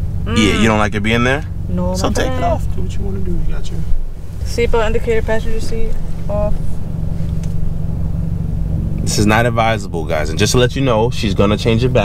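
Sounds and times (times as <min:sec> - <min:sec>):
low rumble in car cabin: 0:00.0 - 0:12.0
steady low tones: 0:00.0 - 0:12.0.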